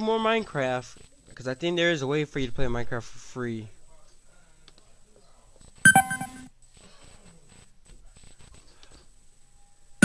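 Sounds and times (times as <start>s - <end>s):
short beep-like chime: 5.9s - 6.5s.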